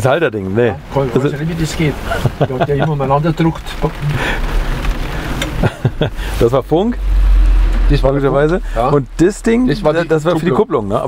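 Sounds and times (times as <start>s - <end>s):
rain on car roof: 0.0s - 11.0s
low rumble: 0.8s - 11.0s.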